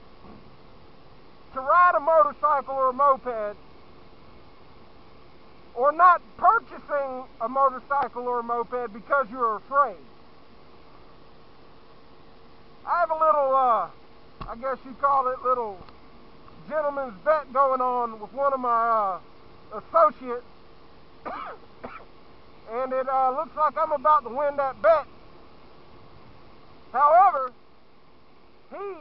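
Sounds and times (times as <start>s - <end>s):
faint steady hum: 0.0s - 29.0s
thin steady whine: 0.0s - 29.0s
man's voice: 1.6s - 3.6s, 5.8s - 10.0s, 12.9s - 15.8s, 22.7s - 25.1s, 27.0s - 27.5s, 28.7s - 29.0s.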